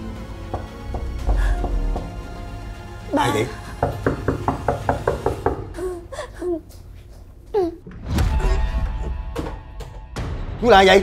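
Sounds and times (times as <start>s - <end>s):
knocking on wooden door: 0.4s - 2.4s, 3.8s - 5.7s.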